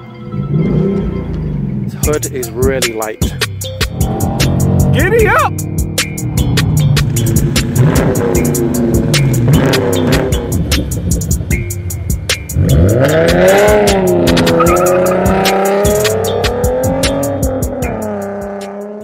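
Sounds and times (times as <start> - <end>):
car engine accelerating: 0.2 - 2.2, 3.3 - 19.0
music with steady beat: 0.5 - 19.0.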